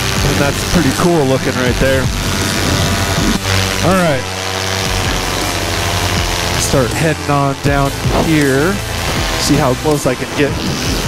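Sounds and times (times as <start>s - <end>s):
paramotor engine droning: 0.0s - 11.0s.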